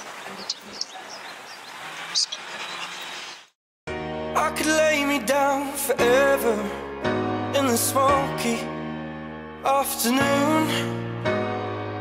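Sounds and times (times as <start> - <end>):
outdoor background noise: 0.0 - 3.6.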